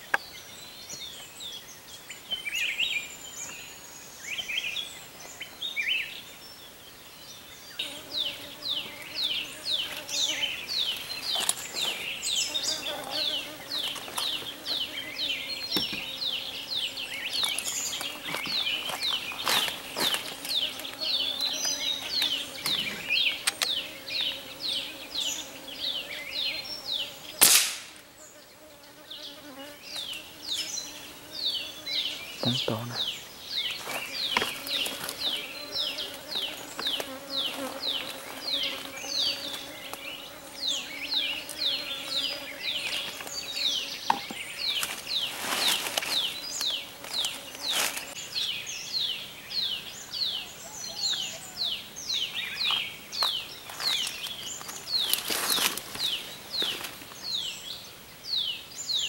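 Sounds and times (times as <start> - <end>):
birds chirping: 0.0 - 59.0
gunshot: 27.4 - 27.9.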